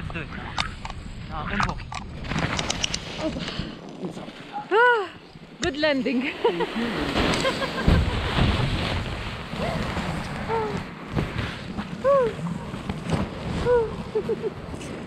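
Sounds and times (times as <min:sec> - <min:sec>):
fabric flapping against microphone: 0:07.0 - 0:15.0.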